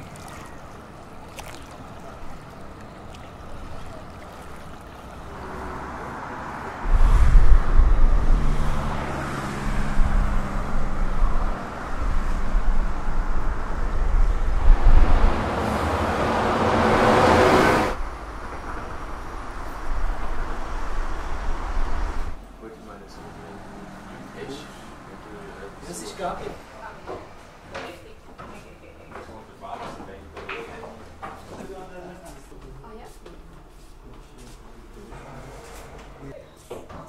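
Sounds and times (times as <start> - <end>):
engine low hum: 0.0 - 25.8
street background noise: 0.0 - 37.0
vehicle rushing past: 5.0 - 22.4, 23.0 - 26.9.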